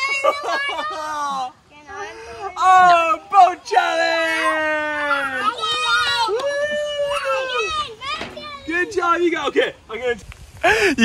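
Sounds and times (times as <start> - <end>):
children shouting and squealing: 0.0 - 9.4.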